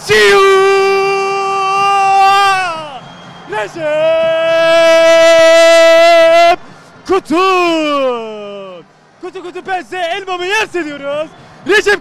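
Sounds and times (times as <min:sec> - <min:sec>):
man yelling goal shout: 0:00.0 - 0:08.8.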